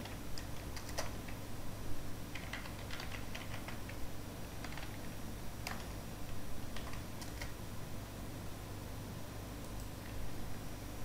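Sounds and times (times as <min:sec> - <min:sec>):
keyboard typing: 0:00.0 - 0:01.4, 0:02.3 - 0:06.0, 0:06.7 - 0:07.6
low steady hum: 0:00.0 - 0:11.0.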